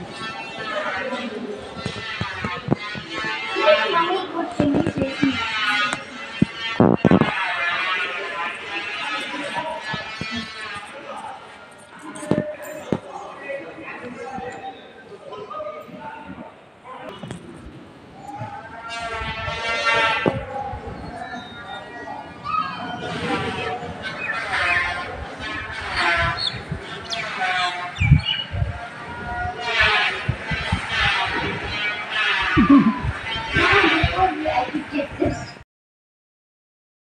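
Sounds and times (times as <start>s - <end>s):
voices talking: 0.0s - 35.6s.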